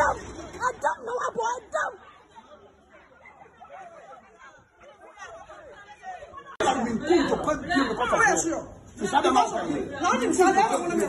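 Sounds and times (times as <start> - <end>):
faint indistinct chatter: 0.0 - 11.0
loud overlapping talk: 0.0 - 11.0.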